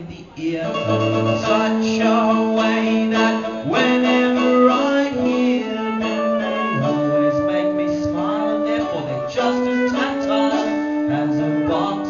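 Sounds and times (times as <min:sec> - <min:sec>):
live band with brass playing: 0:00.8 - 0:12.0.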